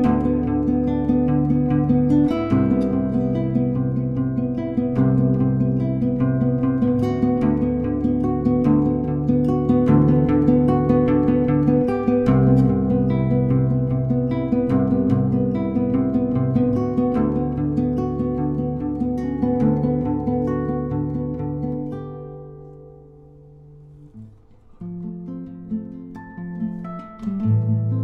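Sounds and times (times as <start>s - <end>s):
solo guitar picked notes: 0.0s - 28.0s.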